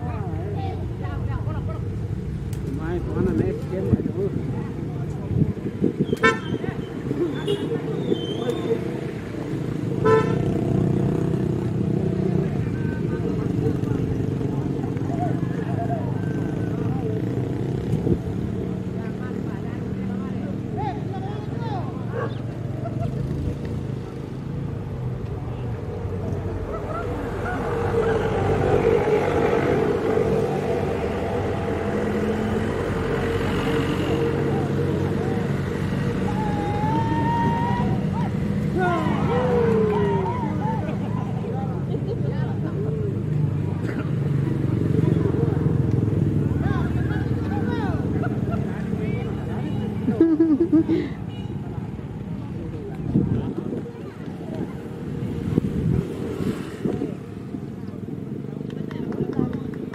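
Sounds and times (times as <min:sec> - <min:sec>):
motor vehicle noise: 0:00.0 - 0:59.9
motorcycles running: 0:00.0 - 0:59.9
people talking: 0:02.6 - 0:09.5, 0:11.0 - 0:17.5, 0:18.8 - 0:24.5, 0:33.9 - 0:55.4, 0:57.8 - 0:59.9
horn toots: 0:06.1 - 0:06.6, 0:10.0 - 0:10.6.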